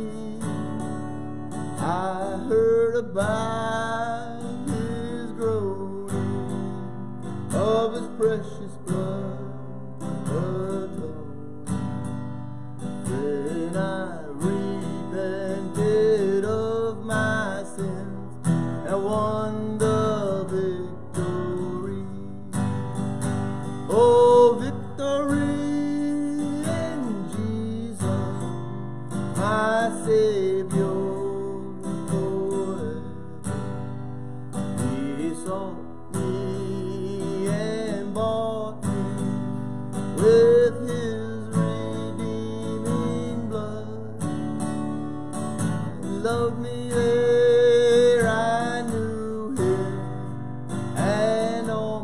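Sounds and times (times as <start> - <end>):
acoustic guitar strumming: 0.0 - 52.0
man singing: 0.0 - 52.0.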